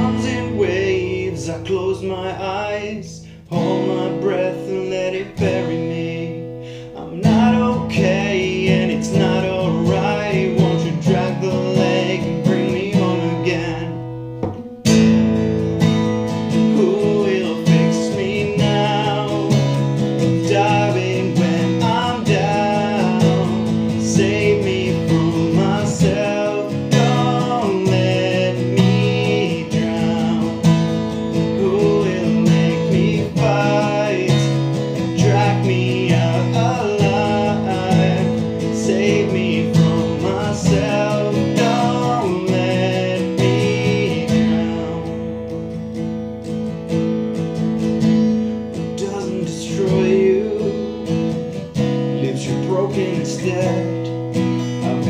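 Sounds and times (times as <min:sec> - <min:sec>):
man singing: 0:00.0 - 0:14.3, 0:16.3 - 0:45.8, 0:48.2 - 0:55.0
acoustic guitar strumming: 0:00.0 - 0:55.0.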